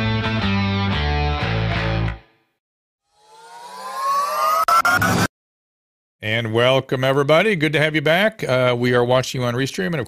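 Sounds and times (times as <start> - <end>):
rising stuttering tone: 3.0 - 5.3.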